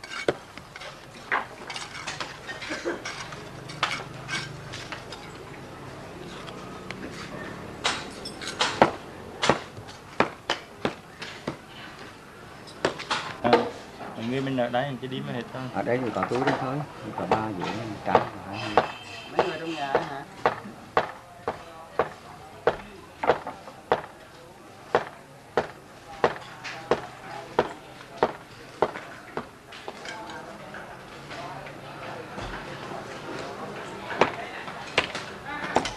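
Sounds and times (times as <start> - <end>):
faint voices talking: 0.0 - 35.9
hammer blows: 18.1 - 21.1
sharp knocks: 18.1 - 24.1.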